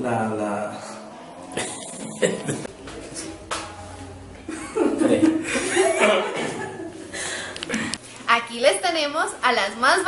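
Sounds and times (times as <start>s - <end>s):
man chuckling and laughing: 1.6s - 2.7s, 4.5s - 7.9s.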